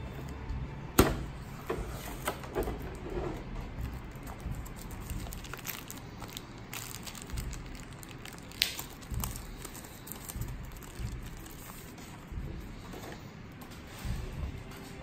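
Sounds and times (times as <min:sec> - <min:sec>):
plastic packaging crinkling: 0:03.8 - 0:12.2.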